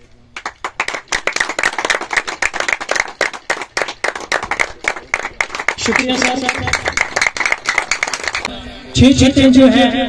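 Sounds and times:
group of people clapping: 0:00.4 - 0:08.5.

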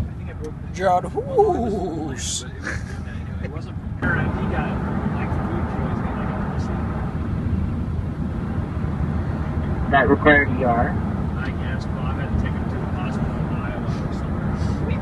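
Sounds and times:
road and engine rumble: 0:00.0 - 0:15.0
person talking: 0:00.8 - 0:03.1
laughter: 0:02.6 - 0:03.6.

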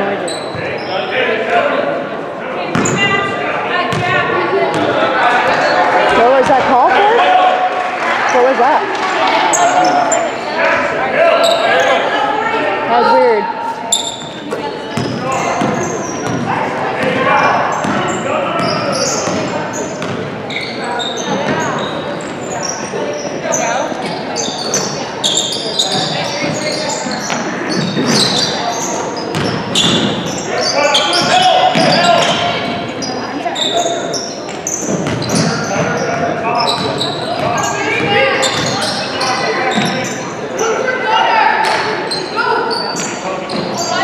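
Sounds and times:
sneakers squeaking: 0:00.0 - 0:01.2, 0:02.6 - 0:07.1, 0:08.3 - 0:44.0.

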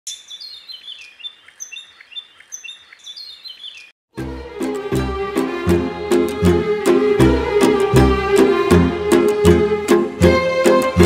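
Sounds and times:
songbirds chirping and singing: 0:00.1 - 0:04.0.

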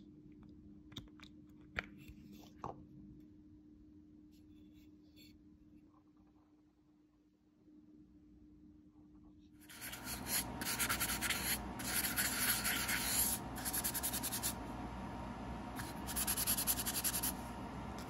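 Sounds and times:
hand sanding hard surface: 0:09.7 - 0:14.6, 0:15.8 - 0:17.4.

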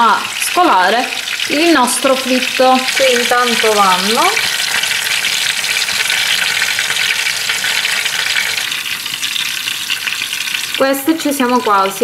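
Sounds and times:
oil sizzling and crackling: 0:00.0 - 0:12.0.

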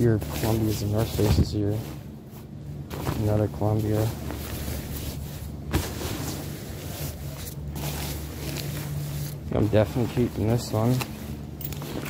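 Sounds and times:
fabric rustling: 0:00.0 - 0:12.0
steady low hum: 0:00.0 - 0:12.0.

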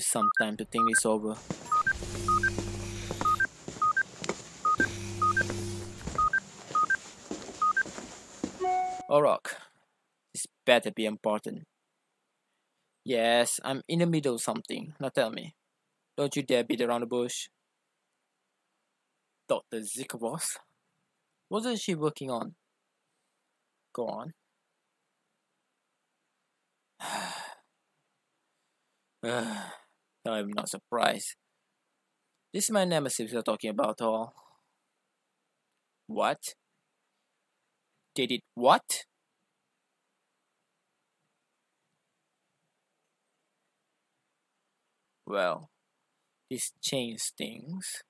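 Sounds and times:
phone ringtone beeps: 0:01.7 - 0:04.0, 0:04.6 - 0:07.0, 0:07.6 - 0:07.8, 0:08.6 - 0:09.1
low buzz: 0:04.8 - 0:06.1
man groaning sigh: 0:29.2 - 0:29.8.

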